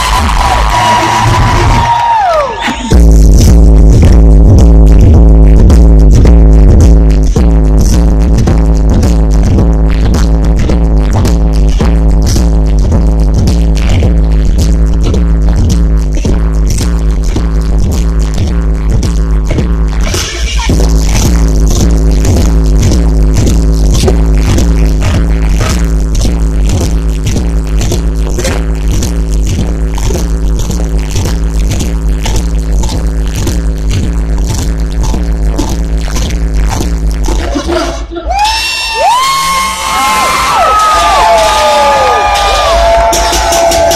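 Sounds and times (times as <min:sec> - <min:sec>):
crowd cheering and whooping: 0:00.0 - 0:03.0, 0:38.3 - 0:43.9
loud dance music with heavy bass: 0:00.0 - 0:43.9.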